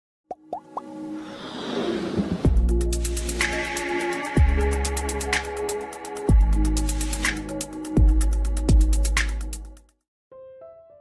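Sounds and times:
rising whoosh: 1.1s - 3.2s
intro music: 2.4s - 9.8s.

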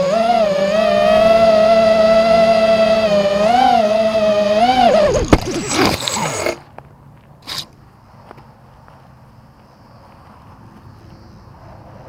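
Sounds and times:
air rushing over microphone: 4.8s - 6.6s.

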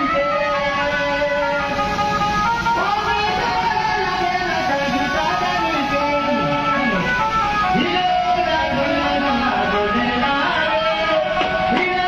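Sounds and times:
loud music with held notes: 0.0s - 12.0s.

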